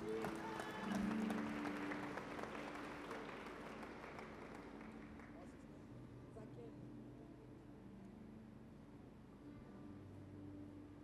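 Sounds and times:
congregation applause: 0.0s - 5.5s.

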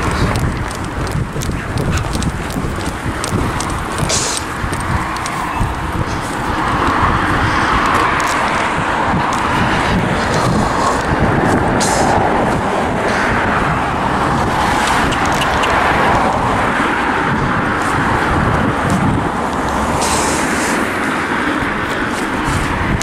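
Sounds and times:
road traffic noise: 0.0s - 23.0s.

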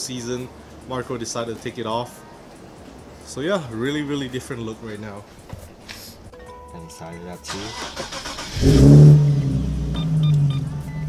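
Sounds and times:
car engine starting and idling: 7.5s - 11.0s.

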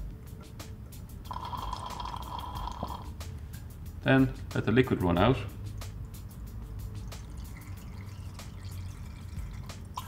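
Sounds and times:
water drawn into pipette: 7.0s - 10.0s.

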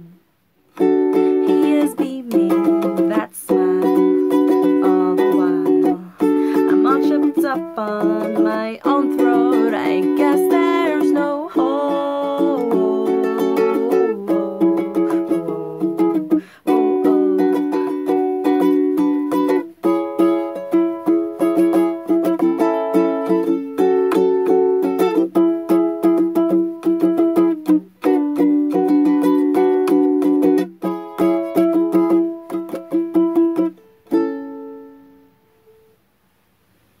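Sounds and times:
ukulele strumming chords: 0.0s - 36.0s.

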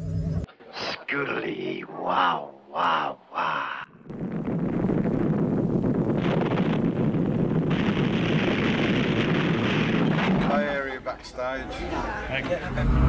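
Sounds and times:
loud steady roaring noise: 12.5s - 13.0s.

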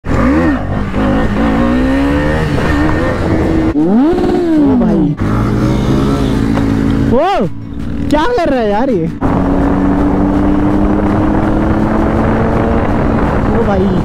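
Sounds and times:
motorcycle engines revving: 0.0s - 14.0s.

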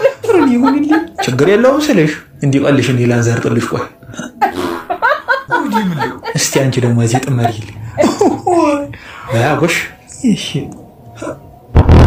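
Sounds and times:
woman laughing: 4.4s - 8.9s
woman talking: 8.2s - 8.9s.

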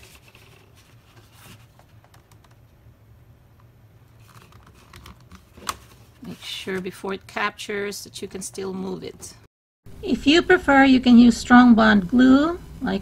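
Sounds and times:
plastic placemat rustling and scraping: 0.0s - 2.0s.

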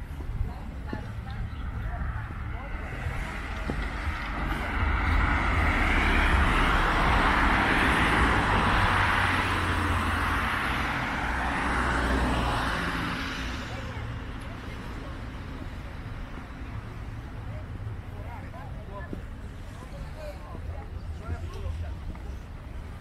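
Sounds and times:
vehicle passing on road: 1.1s - 18.7s.

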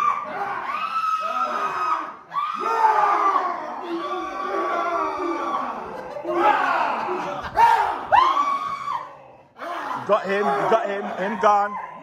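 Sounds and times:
men shouting and screaming: 0.0s - 12.0s
sharp high yells: 0.0s - 12.0s.

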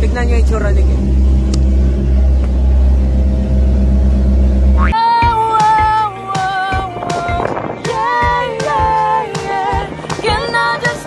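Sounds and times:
boat engine drone: 0.0s - 5.0s
music: 0.0s - 11.0s.

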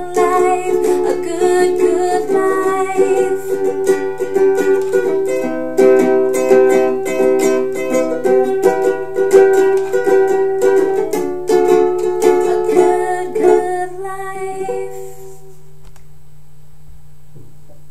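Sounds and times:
ukulele strummed chords: 0.0s - 15.6s.

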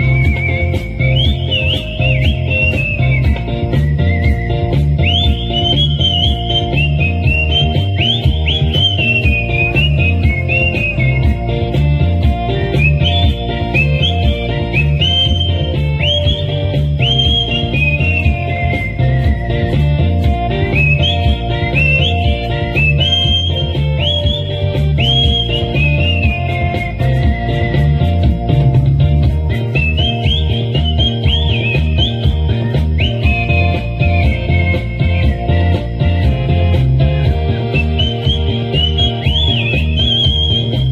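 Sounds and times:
backing track with bass and drums: 0.0s - 40.9s
whistled melody through pa: 0.0s - 40.9s.

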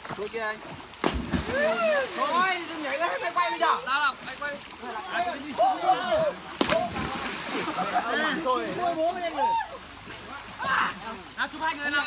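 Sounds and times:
water sloshing: 0.0s - 11.3s
water splash: 0.6s - 3.1s, 5.4s - 8.0s
voices of people: 1.5s - 12.0s.

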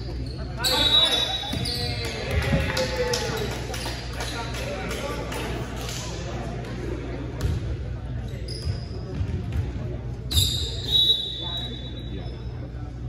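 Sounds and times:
chatter of players and spectators: 0.0s - 13.0s
volleyball bouncing on gym floor: 7.3s - 7.7s.

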